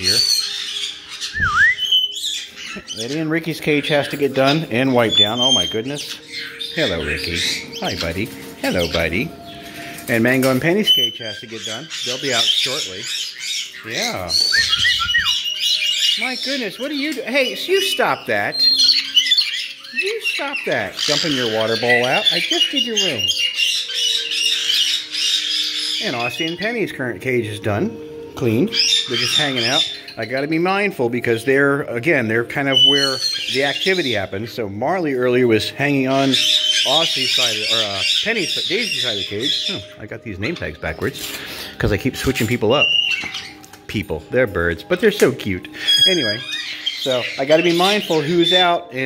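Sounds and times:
parrot whistle: 0:00.0 - 0:03.1, 0:10.8 - 0:16.6, 0:42.4 - 0:43.6, 0:45.6 - 0:48.7
parrot squawk: 0:00.0 - 0:07.9, 0:11.0 - 0:26.7, 0:45.7 - 0:48.9.

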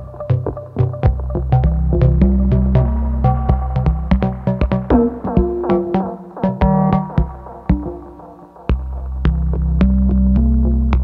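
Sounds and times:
stepping synth notes: 0:00.6 - 0:11.0
sustained low bass: 0:01.1 - 0:05.6.

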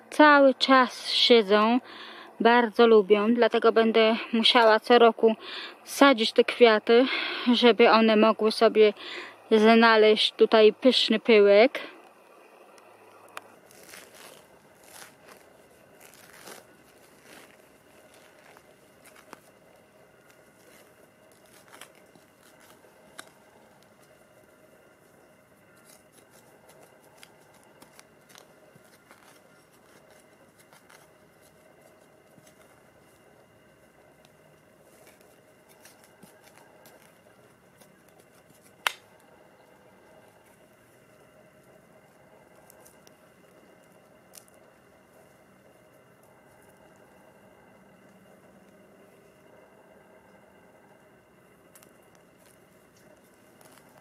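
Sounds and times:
hand tools cutting turf: 0:13.7 - 0:19.5.

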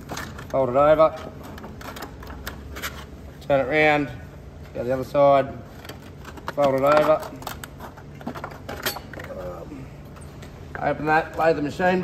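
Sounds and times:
floor sander metal parts rattling: 0:04.7 - 0:12.0.

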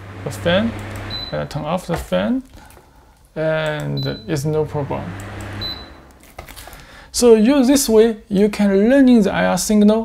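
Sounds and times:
short high beep: 0:05.6 - 0:06.0.

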